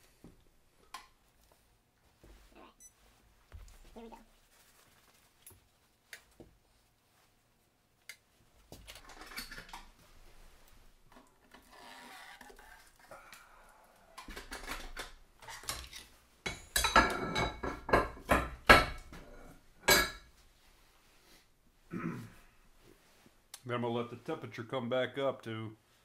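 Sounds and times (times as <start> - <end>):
soft handling noises: 0.0 - 9.0.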